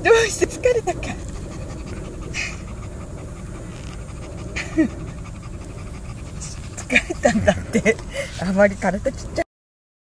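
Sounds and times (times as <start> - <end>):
woman's voice: 0.0 - 1.3, 6.8 - 9.5
puppy panting: 0.0 - 9.4.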